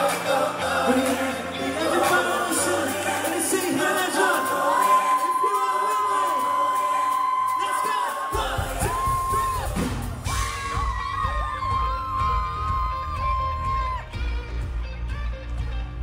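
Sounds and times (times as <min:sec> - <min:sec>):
audience whooping and yelling: 0:01.8 - 0:14.4
live pop-rock band playing: 0:08.3 - 0:16.0.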